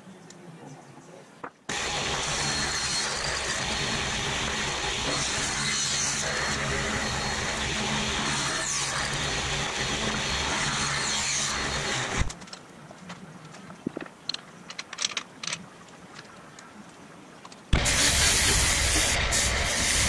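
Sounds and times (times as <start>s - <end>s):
table saw ripping wood: 1.7s - 12.4s, 17.7s - 20.0s.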